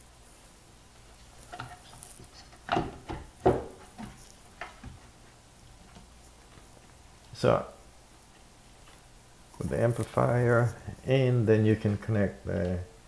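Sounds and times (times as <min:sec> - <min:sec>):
knocks and scrapes of handling: 0:00.0 - 0:07.0.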